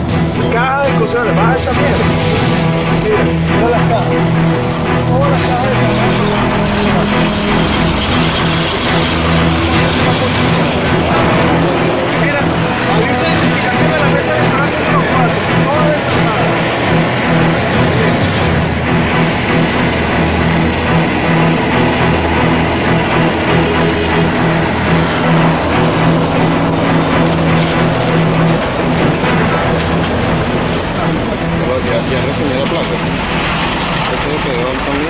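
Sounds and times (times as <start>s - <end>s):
car engine and tyre noise: 0.0s - 35.0s
truck drone: 0.0s - 35.0s.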